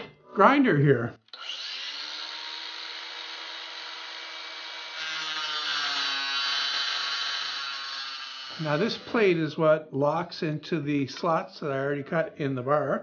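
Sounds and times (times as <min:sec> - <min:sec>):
angle grinder cutting metal: 0:01.3 - 0:09.4.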